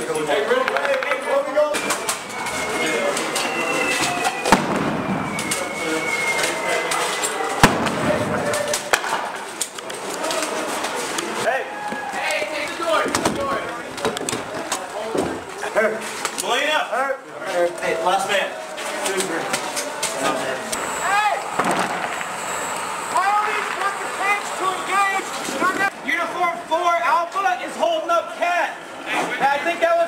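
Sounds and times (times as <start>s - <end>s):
gunshots: 4.4s - 5.7s, 7.6s - 9.4s, 21.5s - 22.3s
faint gunfire cracks: 4.5s - 5.1s, 7.6s - 9.4s
thin high tone: 20.8s - 25.9s.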